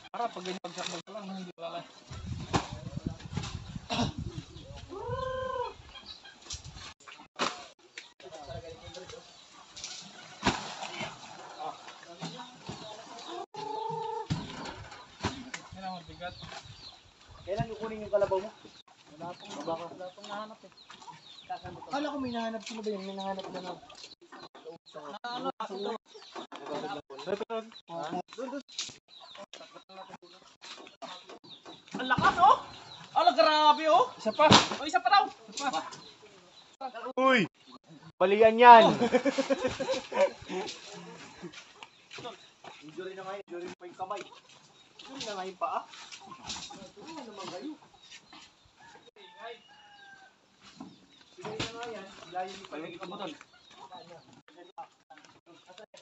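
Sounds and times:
chickens clucking: 0.0s - 34.4s, 37.6s - 49.2s, 50.6s - 55.8s.

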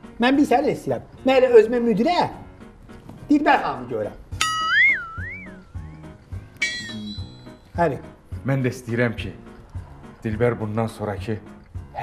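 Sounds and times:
background music: 0.0s - 12.0s
cartoon boing sound effect: 4.6s - 5.4s.

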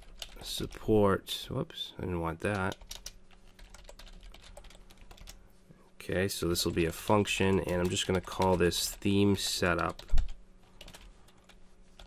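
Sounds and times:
keyboard keys tapping: 2.5s - 5.4s.

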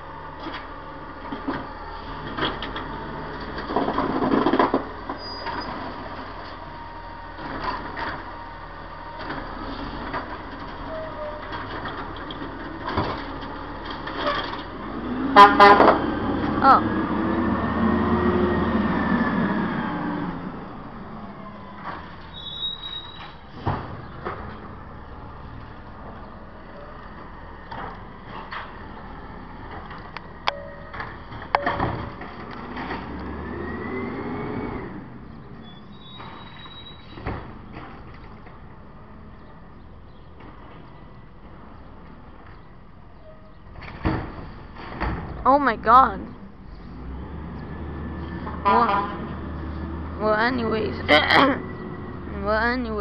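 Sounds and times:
clanks and knocks: 2.3s - 5.6s
high squeals: 22.2s - 23.5s, 35.6s - 37.3s.

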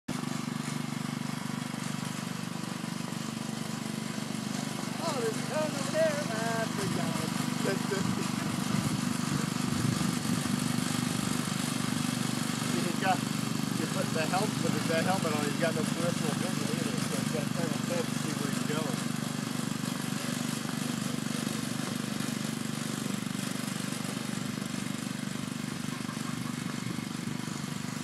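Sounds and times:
go-kart engine running: 0.1s - 28.0s
voices talking: 5.0s - 8.7s, 12.7s - 19.0s.

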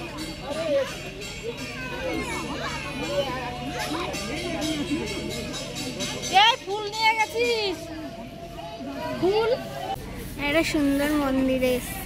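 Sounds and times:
children's voices: 0.0s - 12.0s
people talking and calling: 0.0s - 12.0s.

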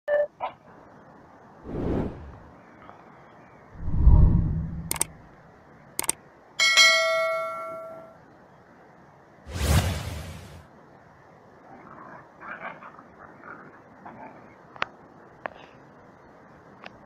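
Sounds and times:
low whooshes: 1.6s - 2.5s, 3.8s - 5.2s
mouse-style clicks: 4.7s - 5.2s, 6.0s - 6.2s.

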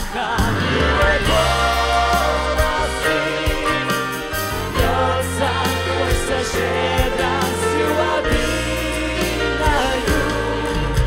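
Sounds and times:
mixed choir singing: 0.0s - 11.0s
steady bass line: 0.4s - 11.0s
trombone: 0.5s - 11.0s.

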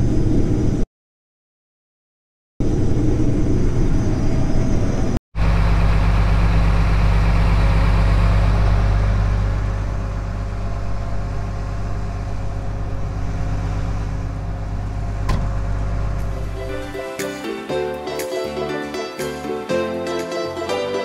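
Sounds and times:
combine harvester droning: 2.6s - 21.0s.

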